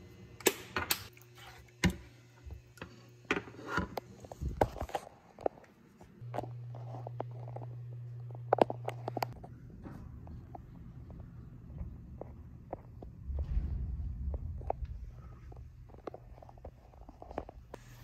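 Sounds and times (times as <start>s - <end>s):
low hum: 6.2s - 18.0s.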